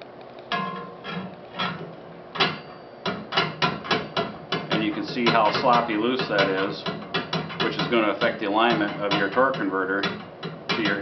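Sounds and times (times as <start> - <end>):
metallic knocks with ring: 2.4 - 11.0.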